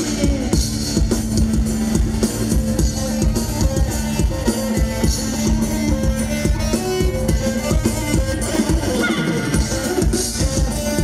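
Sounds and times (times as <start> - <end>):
drum kit beat: 0.0 - 11.0.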